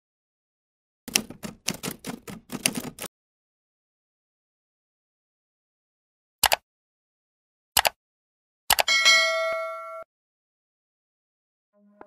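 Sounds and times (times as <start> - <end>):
keyboard key clicks: 1.1 - 3.1, 6.4 - 6.6, 7.8 - 8.0.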